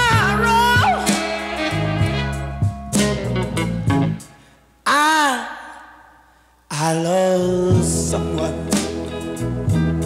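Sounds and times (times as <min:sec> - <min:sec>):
vocal ooh with reverb: 0:04.8 - 0:07.2.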